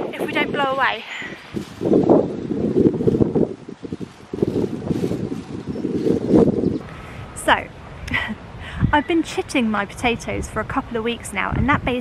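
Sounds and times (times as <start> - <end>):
gusty wind buffeting microphone: 0.0 - 12.0.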